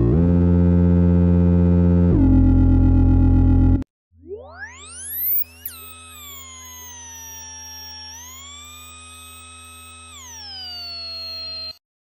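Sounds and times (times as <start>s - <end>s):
low synth drone: 0.0s - 11.6s
synth tone sweeping in pitch: 0.0s - 11.8s
rapid upward synth chirps: 4.2s - 11.8s.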